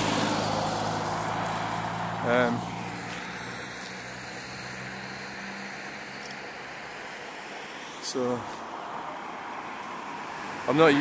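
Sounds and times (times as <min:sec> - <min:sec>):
tyres hissing on wet road: 0:00.0 - 0:11.0.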